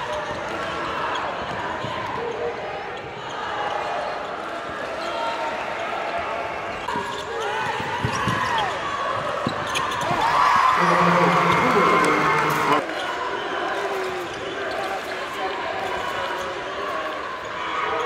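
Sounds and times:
hubbub of voices: 0.0s - 18.0s
sneaker squeaks: 6.9s - 8.8s, 9.4s - 10.3s.

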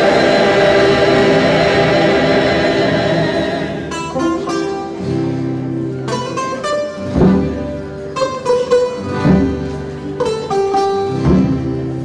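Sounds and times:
mixed choir singing: 0.0s - 4.3s
plucked string instrument notes: 0.0s - 12.0s.

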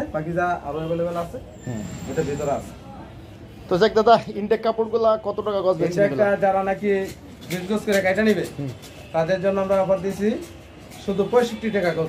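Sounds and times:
man talking: 3.7s - 12.0s.

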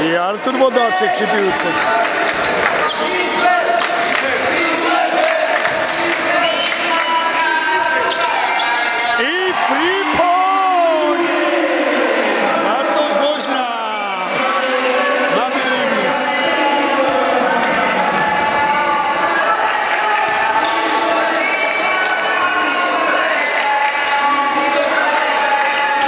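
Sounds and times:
voices calling out: 0.2s - 26.0s.

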